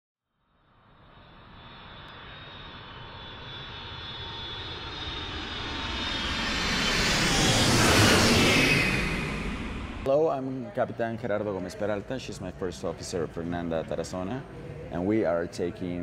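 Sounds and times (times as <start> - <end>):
jet engine whine: 0.4 - 10.1.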